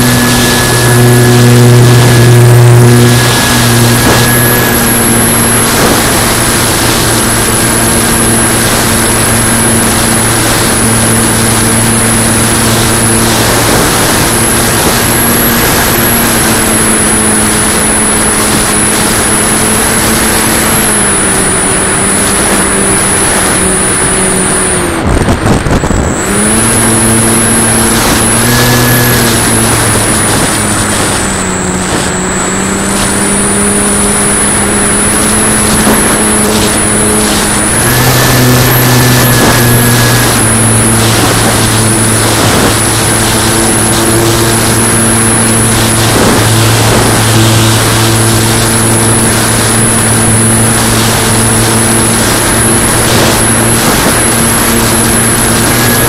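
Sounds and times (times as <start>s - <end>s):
electric motor and propeller whine: 0.0s - 56.0s
wind rush: 0.0s - 56.0s.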